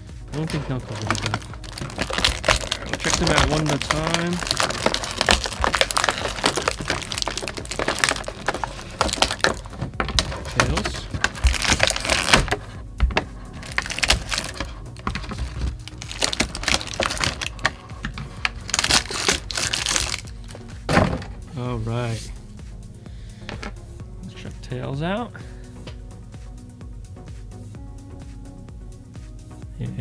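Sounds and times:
music: 0.0s - 30.0s
plastic packaging crinkling: 0.4s - 21.2s.

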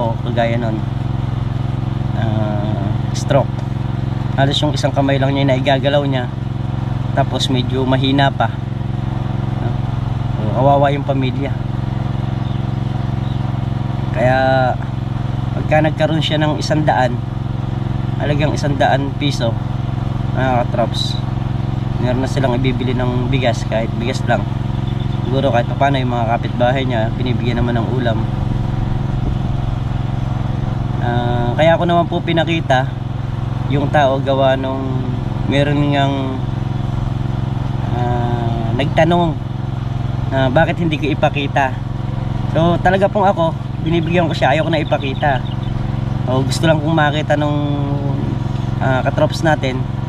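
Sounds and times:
man's voice: 0.0s - 0.8s, 2.2s - 3.5s, 4.4s - 6.3s, 7.2s - 8.6s, 10.4s - 11.6s, 14.2s - 14.8s, 15.6s - 17.2s, 18.2s - 19.6s, 20.4s - 21.2s, 22.0s - 24.4s, 25.3s - 28.3s, 31.0s - 32.9s, 33.7s - 36.4s, 37.9s - 39.4s, 40.4s - 41.8s, 42.6s - 45.5s, 46.3s - 49.8s
small engine idling: 0.0s - 50.0s.

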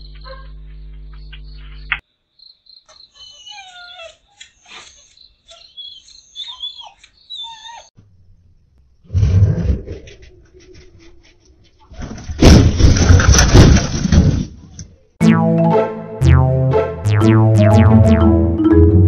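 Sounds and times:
dog barking and yelping: 3.1s - 7.9s
music: 15.2s - 19.0s.

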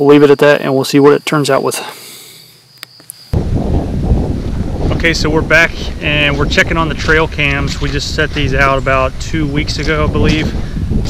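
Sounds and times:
crickets singing: 0.0s - 4.8s
wind buffeting microphone: 3.4s - 11.0s.

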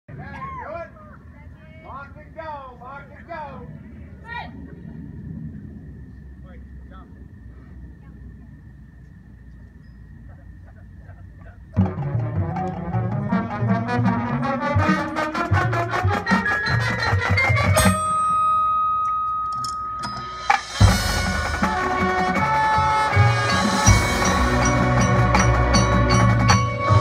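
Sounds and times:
distant voices: 0.1s - 13.5s
low outdoor noise: 0.1s - 27.0s
marching band playing: 11.7s - 18.6s, 19.6s - 27.0s.

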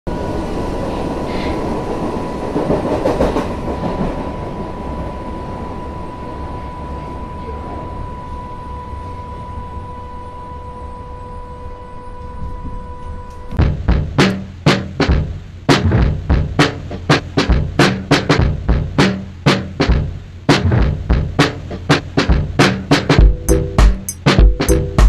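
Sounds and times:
steady whine: 0.1s - 25.0s
underground train rumbling: 0.1s - 25.0s
wheels clacking over rail joints: 2.5s - 4.3s
music drum hits: 13.4s - 25.0s.

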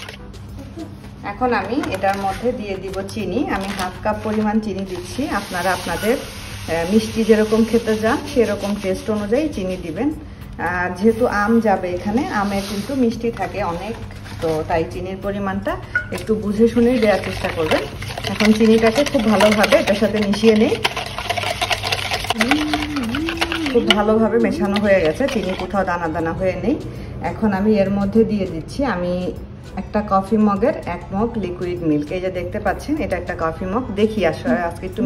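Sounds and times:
sugar pouring into a cup: 16.6s - 25.8s
whisk clicking against plastic bowl: 16.9s - 25.7s
person talking: 22.3s - 25.9s.

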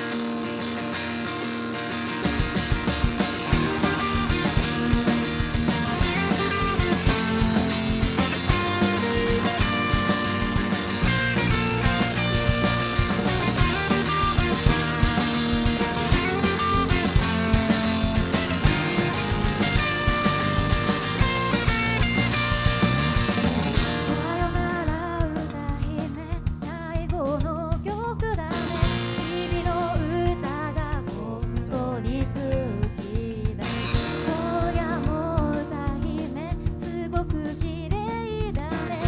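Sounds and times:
live rock band playing: 0.0s - 39.0s.

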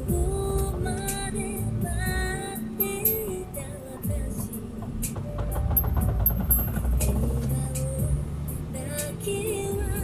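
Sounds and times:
car engine and road rumble: 0.0s - 10.0s
song playing: 0.0s - 10.0s.

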